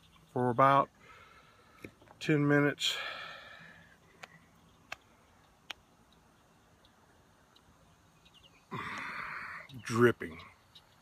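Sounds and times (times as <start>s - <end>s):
breathy hiss: 2.8s - 4.2s, 8.7s - 9.8s.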